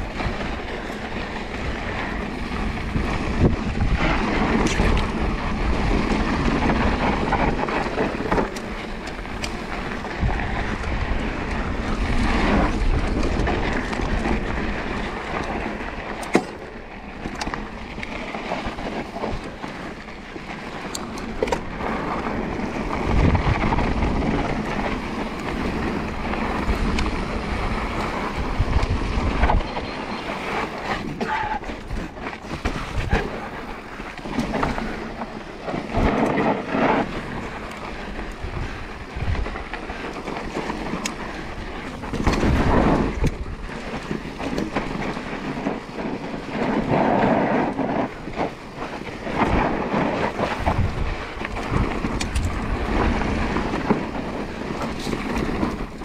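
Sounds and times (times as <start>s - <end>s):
bike rattling over bumps: 0.0s - 56.0s
bike tyres rolling over dirt: 0.0s - 56.0s.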